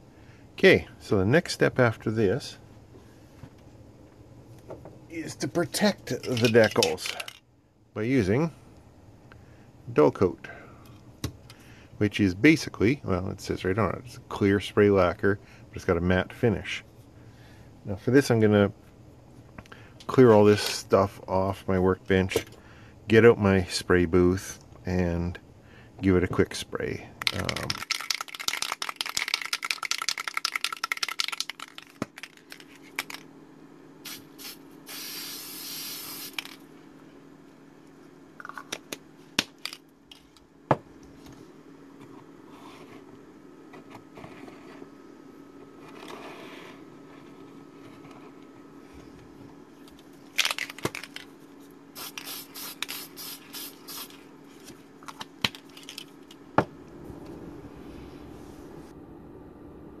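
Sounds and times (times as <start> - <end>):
aerosol can rattling when shaken: 27.2 - 33.2, 50.4 - 51.3, 52.0 - 54.2, 55.4 - 56.2
aerosol spray hissing: 34.0 - 36.4, 52.0 - 54.2.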